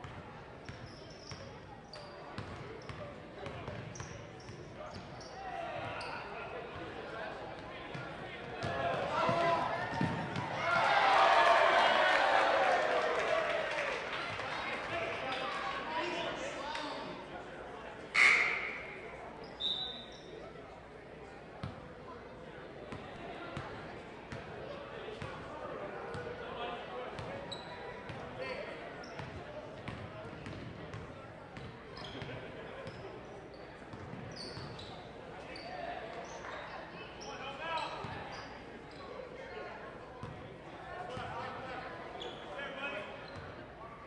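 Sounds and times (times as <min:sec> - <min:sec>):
murmur of crowd voices: 0:00.0 - 0:44.0.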